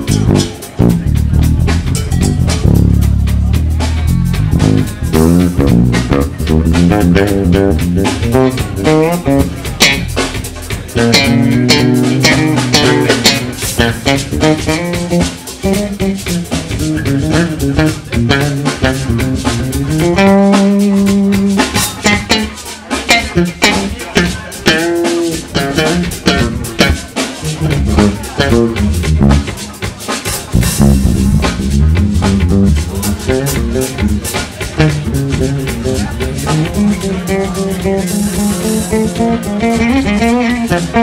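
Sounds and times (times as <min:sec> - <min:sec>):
drum hits: 0:00.0 - 0:41.0
jazz band playing: 0:00.0 - 0:41.0.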